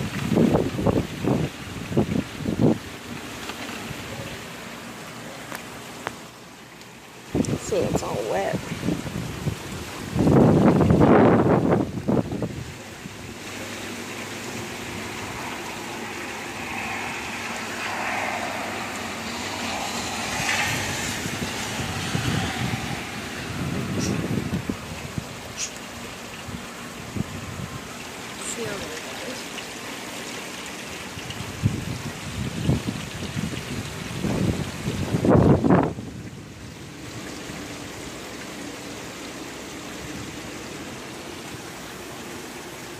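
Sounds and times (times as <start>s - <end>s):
wind gusts on microphone: 0.0s - 5.0s, 7.2s - 29.0s, 31.0s - 38.4s
heavy rain pouring: 0.0s - 42.9s
water running off: 7.2s - 31.6s.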